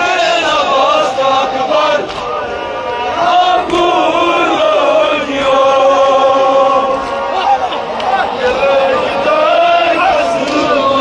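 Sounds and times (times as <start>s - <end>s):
men chanting a lament: 0.0s - 11.0s.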